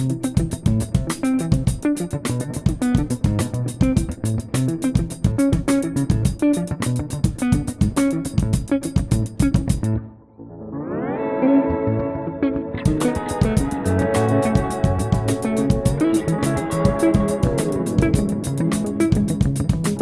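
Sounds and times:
clean electric guitar arpeggio: 0.0s - 20.0s.

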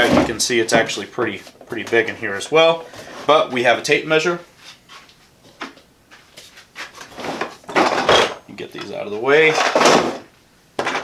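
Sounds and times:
plastic bins knocking and scraping: 0.0s - 3.4s, 6.8s - 11.0s.

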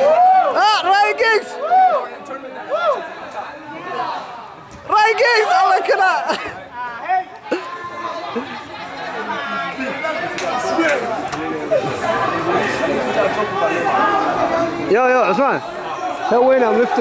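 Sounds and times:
spectators chattering: 0.0s - 17.0s.

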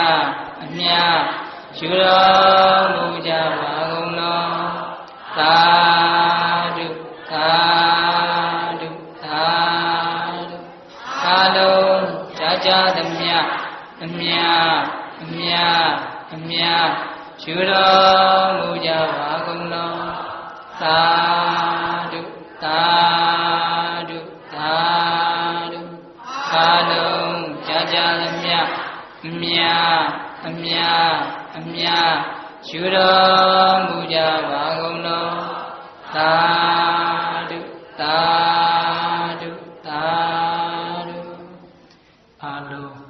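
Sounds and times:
man chanting in held notes: 0.0s - 41.8s
breaths: 1.4s - 1.7s, 41.8s - 42.3s.

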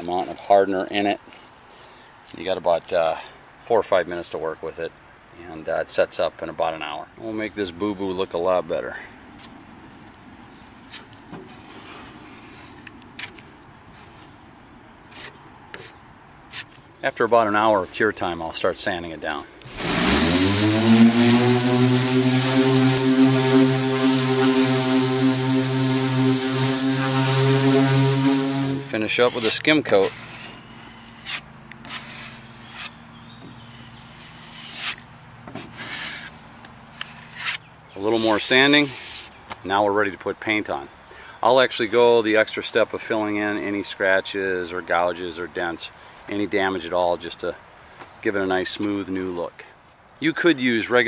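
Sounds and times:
plastic spreader scraping filler: 19.6s - 30.6s.

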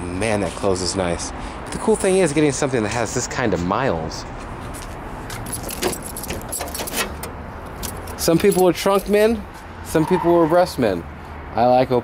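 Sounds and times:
keys jangling: 5.3s - 9.2s.

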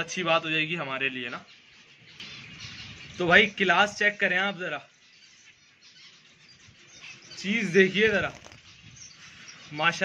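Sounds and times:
finches chirping: 0.0s - 10.0s.

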